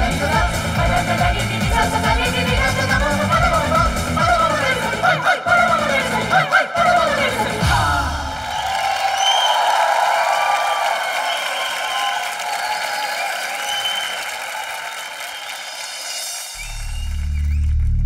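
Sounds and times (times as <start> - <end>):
audience applauding and cheering: 8.1 - 18.0
deep bass drone: 16.6 - 18.0.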